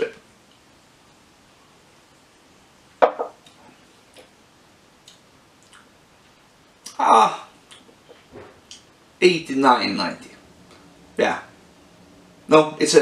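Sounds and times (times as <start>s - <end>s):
glass knocking on wooden barrel: 3.0s - 3.4s.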